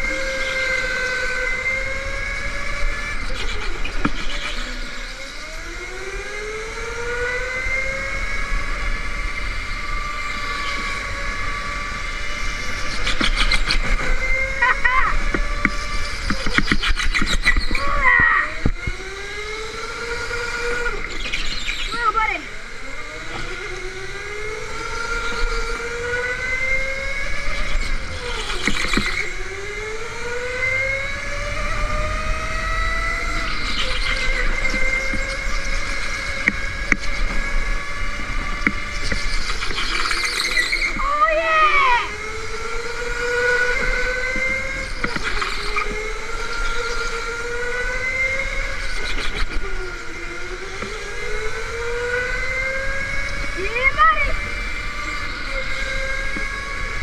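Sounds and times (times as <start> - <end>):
electric go-kart motor whining: 0.0 - 57.0.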